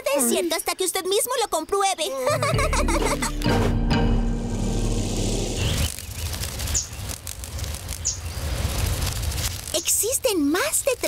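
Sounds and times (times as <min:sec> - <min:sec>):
hummingbird wings whirring: 0:04.5 - 0:09.5.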